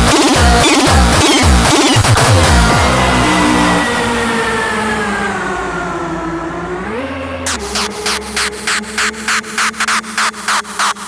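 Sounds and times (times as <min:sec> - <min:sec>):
distorted kick drum: 0:00.0 - 0:03.0, 0:07.5 - 0:11.0
sustained synth chords: 0:00.0 - 0:11.0.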